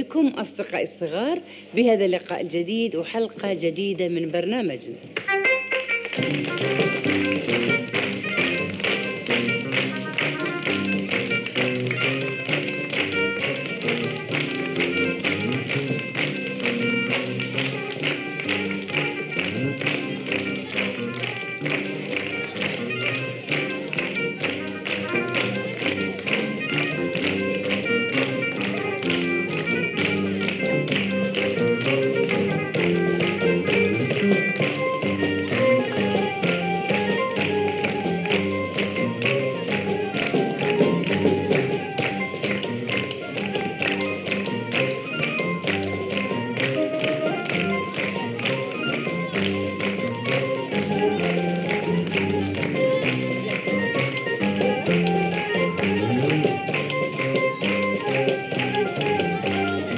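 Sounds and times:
song with a steady beat: 0:05.1 - 0:59.9
children clapping in rhythm: 0:05.2 - 0:59.9.

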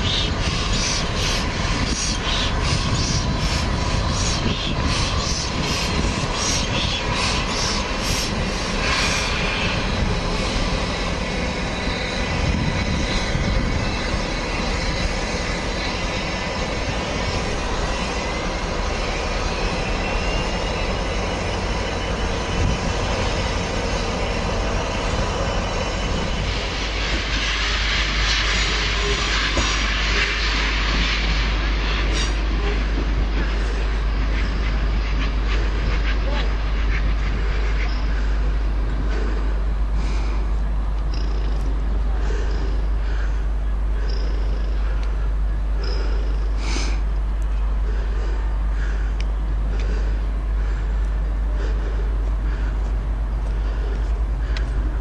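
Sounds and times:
steam hissing: 0:00.0 - 0:52.8
steam locomotive chuffing: 0:00.0 - 0:55.0.

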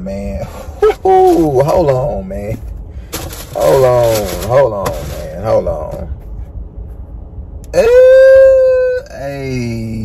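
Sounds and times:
man's high-pitched excited ooh: 0:07.7 - 0:09.8.

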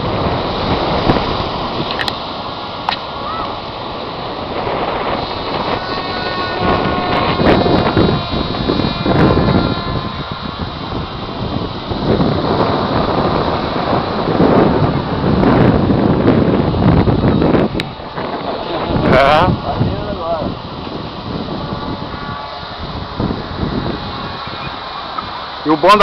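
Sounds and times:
faint high whine: 0:00.0 - 0:26.0
wind buffeting microphone: 0:00.0 - 0:26.0.

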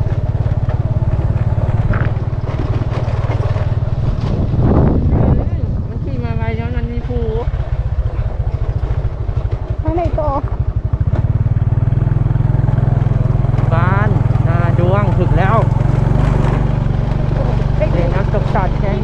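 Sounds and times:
motorcycle engine running: 0:00.0 - 0:19.0
wind on microphone: 0:01.0 - 0:11.1.

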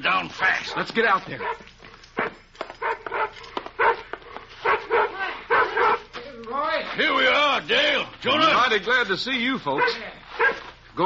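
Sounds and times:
dog barking: 0:00.6 - 0:06.1, 0:09.8 - 0:10.7.

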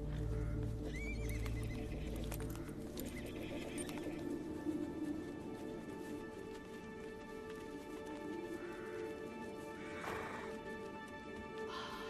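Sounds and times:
hoof steps: 0:00.0 - 0:12.0
low film score music: 0:00.0 - 0:12.0.

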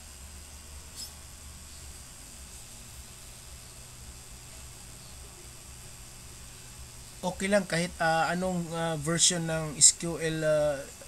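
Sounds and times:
microphone room hum and hiss: 0:00.0 - 0:11.0.

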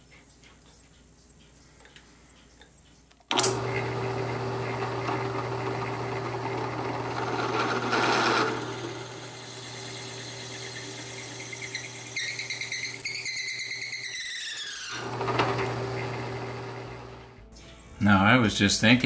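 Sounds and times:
drill bit cutting wood: 0:03.3 - 0:17.1
drill press motor hum: 0:03.3 - 0:17.3
high squeal: 0:10.5 - 0:15.0.

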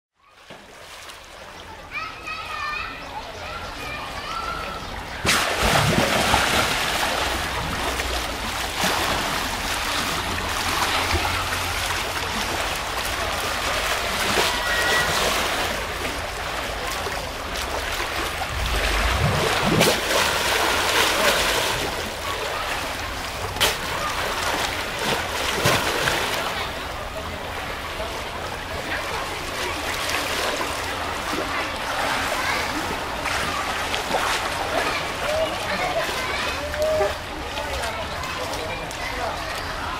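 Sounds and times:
hippos splashing in water: 0:05.2 - 0:37.3.

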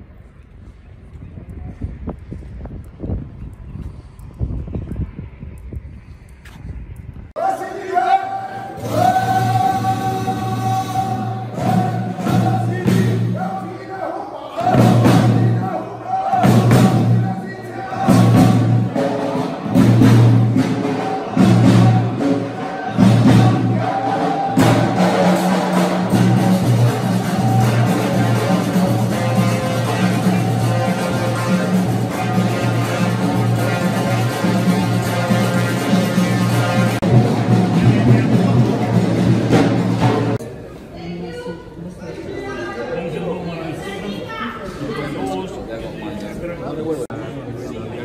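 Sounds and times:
wind buffeting microphone: 0:00.0 - 0:07.4
drums beating steady rhythm: 0:08.6 - 0:13.8, 0:14.6 - 0:40.4.

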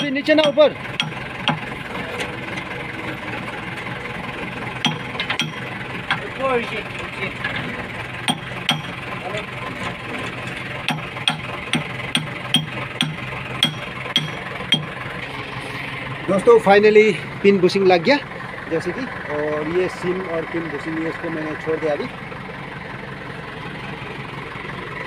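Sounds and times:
metal-on-metal knocks: 0:00.0 - 0:01.8, 0:04.8 - 0:06.2, 0:08.3 - 0:09.1, 0:10.9 - 0:15.0
diesel engine idling: 0:00.0 - 0:25.0.

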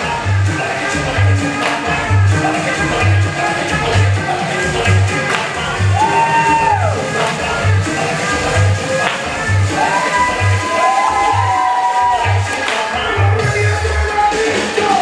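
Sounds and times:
upbeat dance music: 0:00.0 - 0:15.0.

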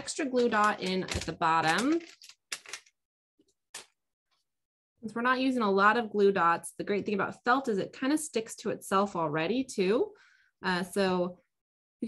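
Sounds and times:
rustles and clicks of craft supplies: 0:00.0 - 0:04.4.

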